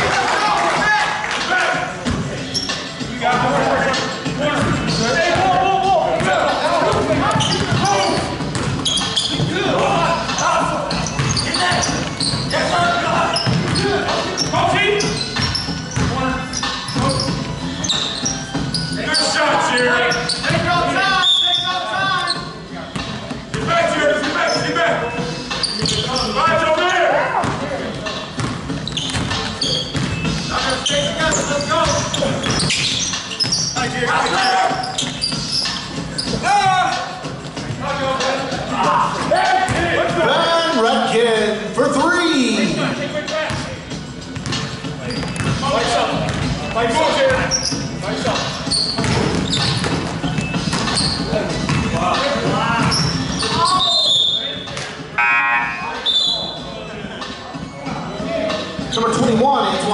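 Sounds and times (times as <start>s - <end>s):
basketball bouncing on wooden floor: 6.9s - 9.6s, 13.3s - 13.9s, 48.9s - 52.0s.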